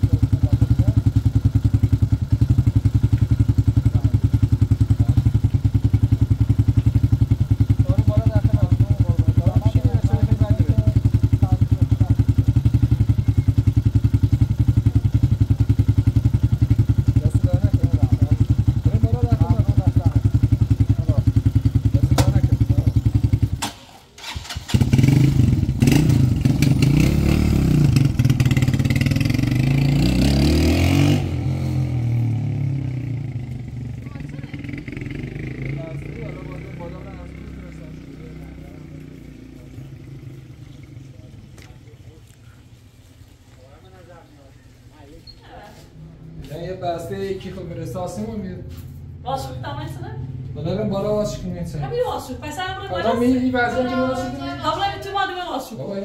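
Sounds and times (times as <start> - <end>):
motorcycle engine revving: 0.0 - 42.6
motorcycle engine idling: 0.0 - 45.4.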